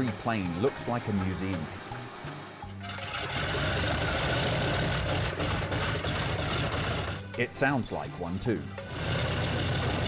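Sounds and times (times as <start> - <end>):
piston aircraft engine rumbling: 0.0 - 10.0.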